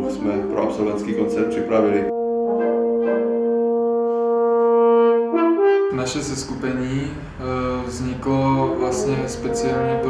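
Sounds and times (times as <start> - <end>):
trombone and wind quintet chord: 0.0 - 6.4, 8.6 - 10.0.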